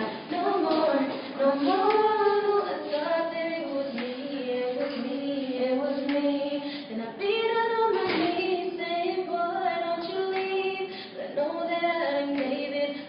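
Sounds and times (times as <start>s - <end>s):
girls singing in harmony: 0.0s - 13.0s.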